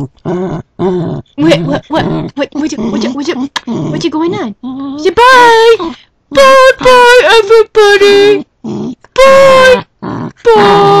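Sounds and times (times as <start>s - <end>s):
small dog whining: 8.3s - 11.0s.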